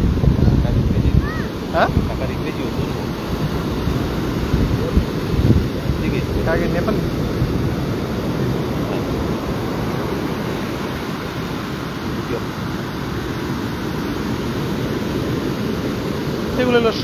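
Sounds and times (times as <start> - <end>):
ocean surf breaking: 0.0 - 17.0
wind on microphone: 0.0 - 17.0.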